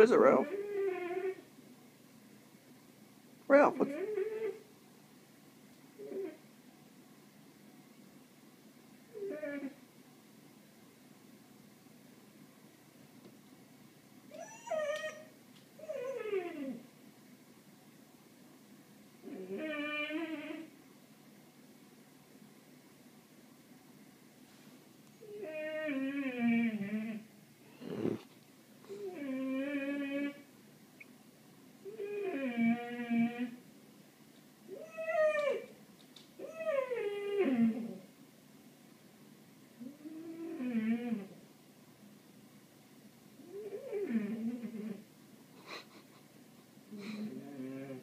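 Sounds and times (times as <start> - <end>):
dog whining: 0.3 - 1.5, 3.8 - 4.7, 6.0 - 6.4, 9.1 - 9.8, 14.3 - 16.9, 19.2 - 20.7, 25.2 - 28.2, 28.9 - 30.5, 31.8 - 33.6, 34.7 - 35.8, 36.4 - 38.1, 39.8 - 41.4, 43.4 - 45.0, 46.9 - 48.0.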